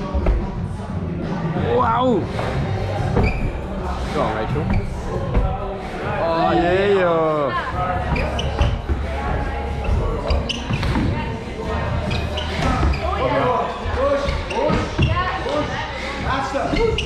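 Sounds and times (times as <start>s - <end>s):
people chattering: 0.0s - 17.0s.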